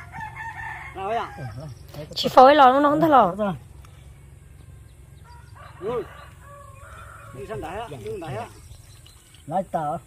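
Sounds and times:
rooster crowing: 0.0 - 1.7, 5.2 - 8.0.

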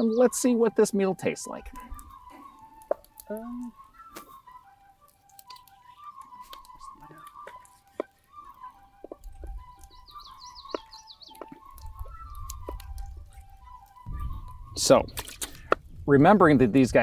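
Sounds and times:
high warbling bird call: 0.0 - 16.1
soft flute music: 0.0 - 17.0.

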